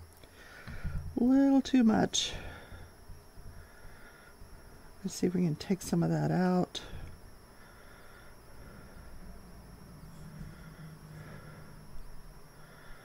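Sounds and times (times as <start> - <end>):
faint background hiss: 0.0 - 13.0
faint low steady hum: 0.0 - 13.0.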